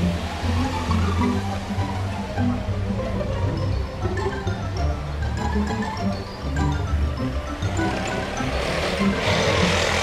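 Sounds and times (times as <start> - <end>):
background music: 0.0 - 10.0
motor scooter engine approaching: 7.3 - 10.0.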